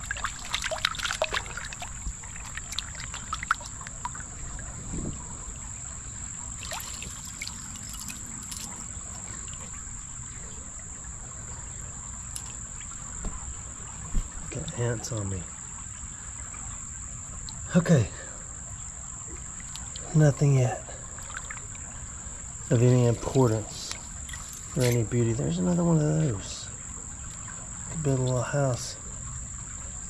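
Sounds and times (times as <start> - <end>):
hand splashing in shallow water: 0.0 - 4.3, 6.6 - 9.7
high insect drone: 0.0 - 30.0.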